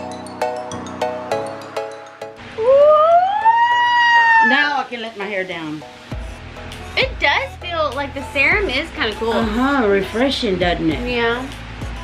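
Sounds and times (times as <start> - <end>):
woman squealing: 2.6 - 4.8
woman speaking: 4.3 - 5.8, 7.0 - 11.5.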